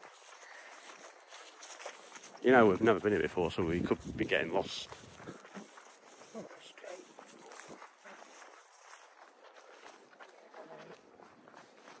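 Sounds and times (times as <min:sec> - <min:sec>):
footsteps through long grass: 0:00.0 - 0:12.0.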